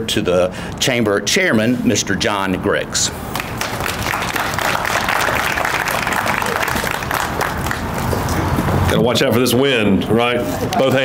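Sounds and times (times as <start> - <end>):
audience applauding: 3.3 - 8.4.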